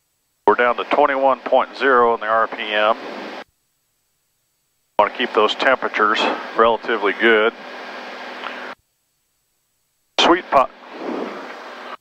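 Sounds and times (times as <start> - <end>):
aircraft engine and propeller drone: 0.5 - 3.4, 5.0 - 8.8.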